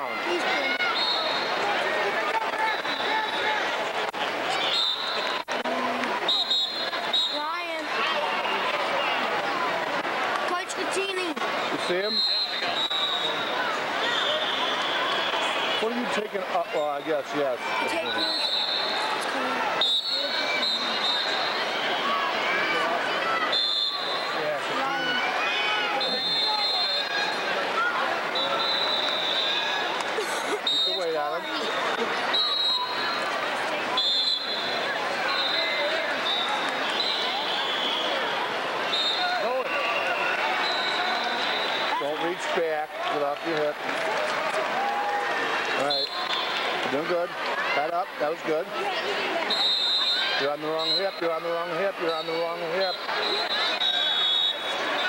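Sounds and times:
crowd talking and shouting: 0.0 - 55.0.

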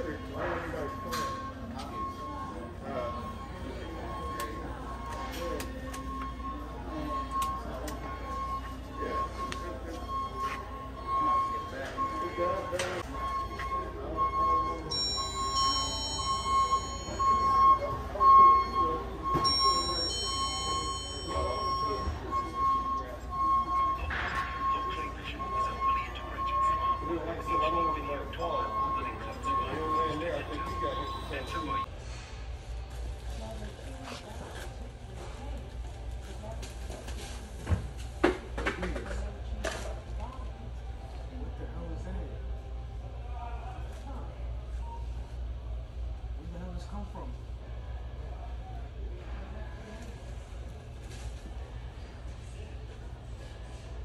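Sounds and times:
repeatedly broken tone: 0.0 - 31.9
indistinct talk: 0.0 - 32.0.

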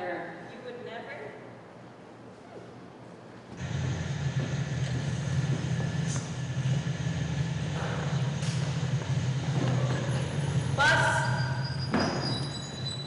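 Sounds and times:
low rumble with hiss: 0.0 - 13.0.

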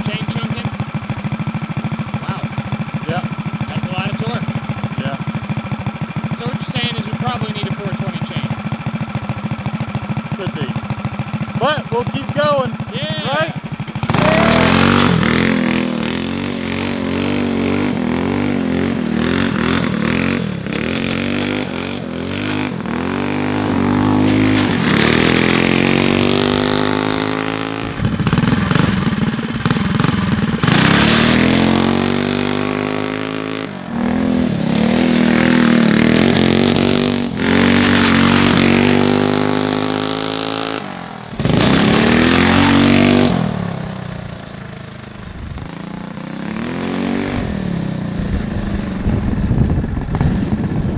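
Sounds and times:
go-kart engine revving: 0.0 - 50.9.

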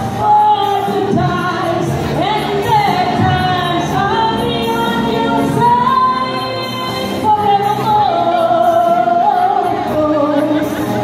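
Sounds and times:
musical accompaniment: 0.0 - 11.0
woman singing: 0.0 - 11.0.

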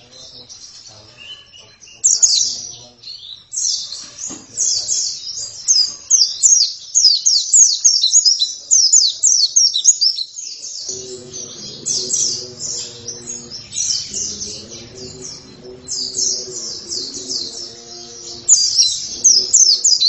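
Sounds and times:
bird warbling song: 0.0 - 20.0.

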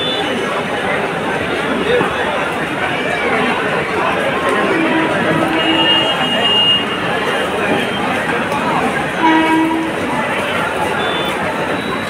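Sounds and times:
crowd hubbub: 0.0 - 12.0
train horn blast: 4.4 - 7.3, 9.2 - 10.2.

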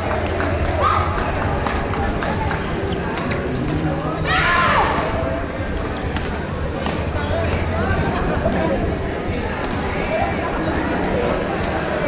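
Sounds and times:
people chattering: 0.0 - 12.0
sports shoes squeaking on court floor: 2.4 - 8.4.

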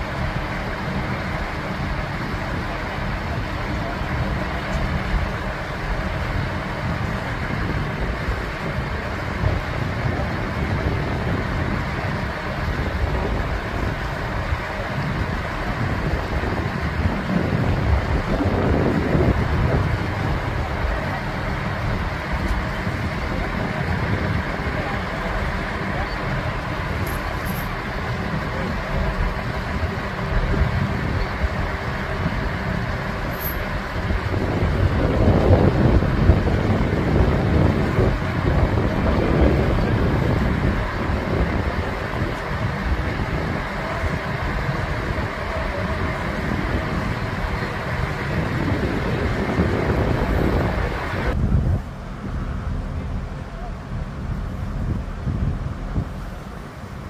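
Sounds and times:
crane diesel engine running: 0.0 - 57.0
wind noise on microphone: 0.0 - 57.0.

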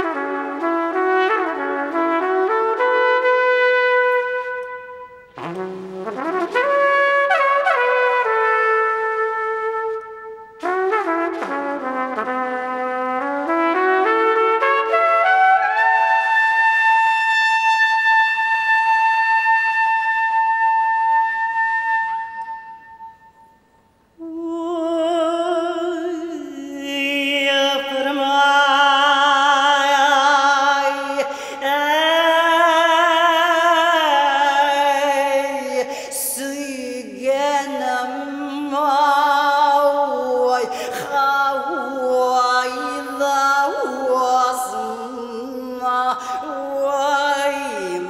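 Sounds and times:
trumpet solo: 0.0 - 23.6
woman singing: 24.2 - 48.0.

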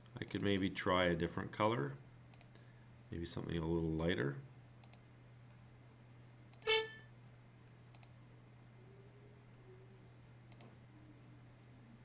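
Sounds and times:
low steady hum: 0.0 - 12.0
bright ringing ding: 6.6 - 7.1
faint click: 10.5 - 10.8.

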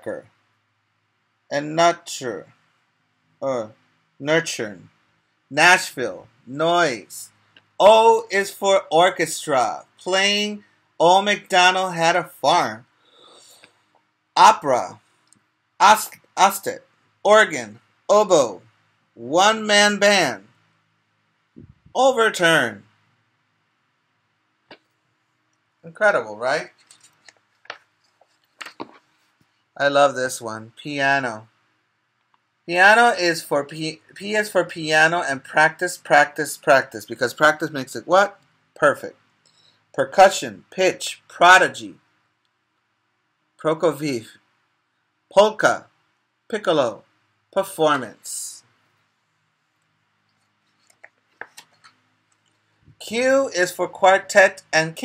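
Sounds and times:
faint paper clicks and rustles: 26.7 - 29.8, 49.7 - 53.0
book pages turning: 26.8 - 29.4, 50.6 - 52.0.

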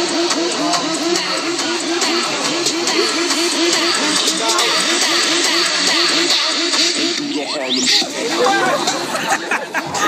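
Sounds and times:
people talking and shouting: 0.0 - 10.0.

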